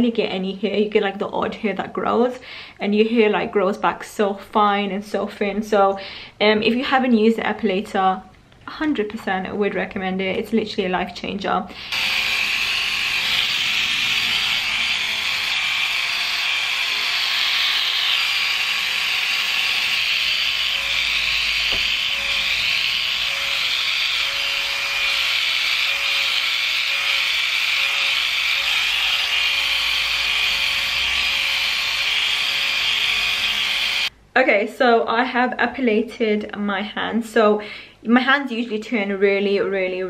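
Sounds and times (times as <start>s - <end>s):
epilator high-pitched buzz: 11.8s - 34.1s.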